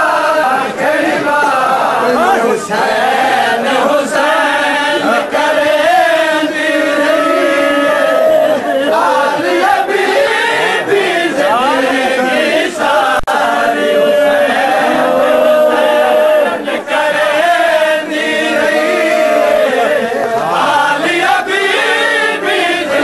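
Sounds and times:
crowd of men chanting a lament: 0.0s - 23.0s.

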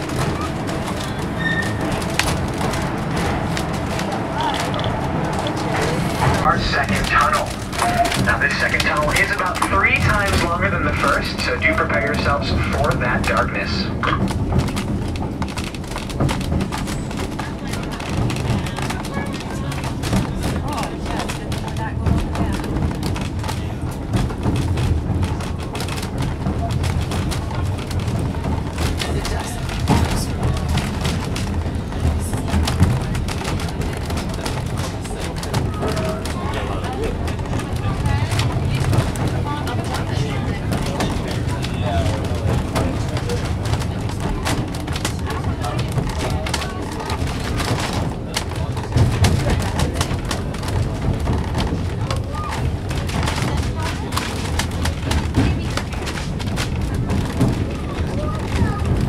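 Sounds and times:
indistinct passenger voices: 0.0s - 59.0s
train car rumbling and rattling: 0.0s - 59.0s.

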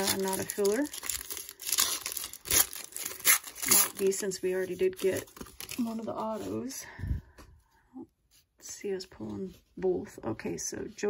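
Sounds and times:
foil wrapper tearing and crinkling: 0.0s - 4.3s.

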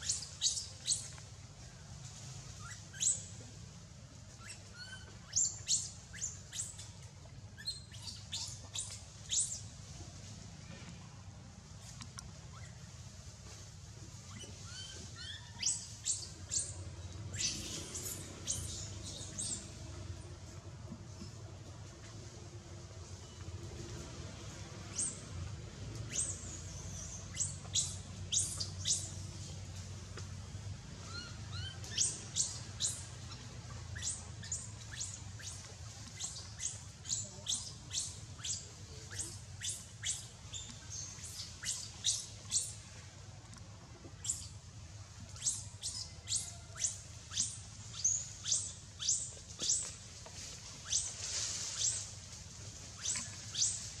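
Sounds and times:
small birds chirping: 0.0s - 3.6s, 4.3s - 9.8s, 14.3s - 20.4s, 24.6s - 52.3s, 52.9s - 54.0s.

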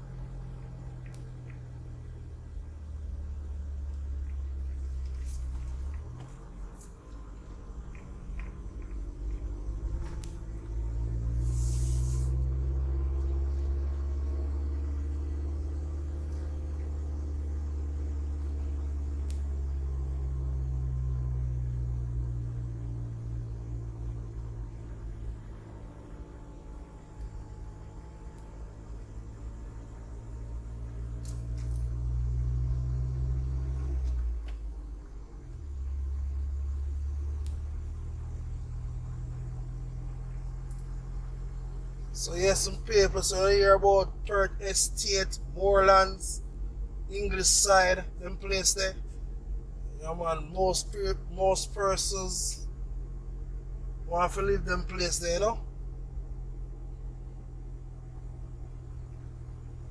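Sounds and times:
vehicle engine running: 0.0s - 59.9s
short hiss: 11.4s - 12.4s.

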